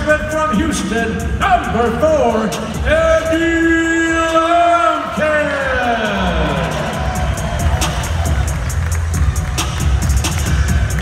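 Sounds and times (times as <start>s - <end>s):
announcer calling out: 0.0s - 7.0s
loud music with heavy bass: 0.0s - 11.0s
crowd cheering: 4.3s - 11.0s.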